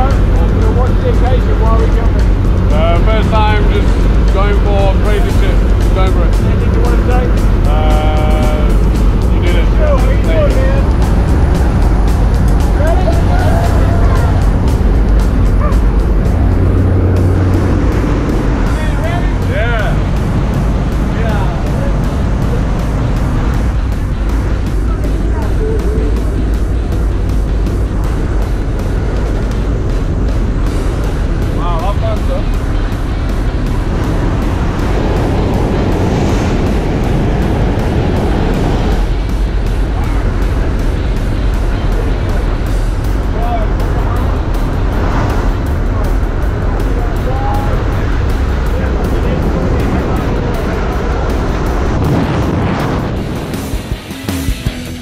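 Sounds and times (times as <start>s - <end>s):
airplane engines droning in cabin: 0.0s - 54.4s.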